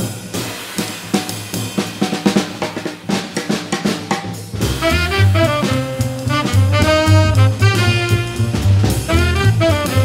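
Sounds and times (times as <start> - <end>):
jazz drum kit playing: 0.0 - 10.0.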